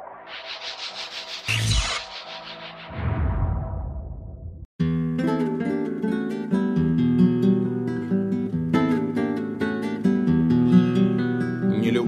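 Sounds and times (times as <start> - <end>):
fluttering rush of noise: 0.0 - 4.7
music: 4.8 - 12.0.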